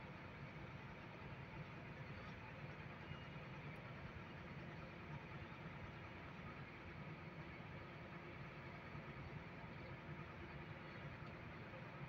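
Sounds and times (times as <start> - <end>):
vehicle engine and road noise: 0.0 - 12.0.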